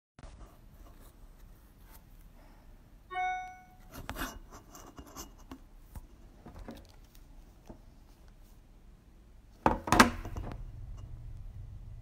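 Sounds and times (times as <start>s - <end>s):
electronic chime: 3.1s - 3.9s.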